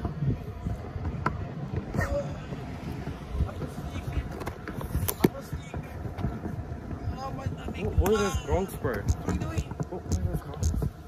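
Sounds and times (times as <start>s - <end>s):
scooter wheels rolling on pavement: 0.0s - 11.0s.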